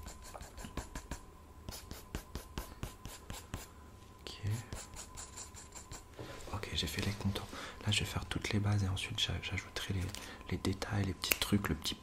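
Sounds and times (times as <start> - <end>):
pencil scratching on paper: 0.0 - 3.7, 4.6 - 6.1.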